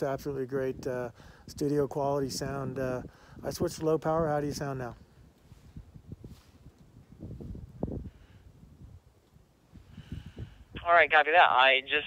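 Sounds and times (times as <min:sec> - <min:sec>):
radio reply through speaker: 0:10.8 - 0:12.0.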